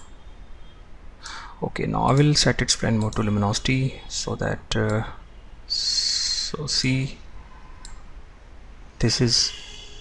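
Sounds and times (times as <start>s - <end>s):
microphone hiss: 0.0s - 10.0s
computer mouse click: 7.8s - 8.0s.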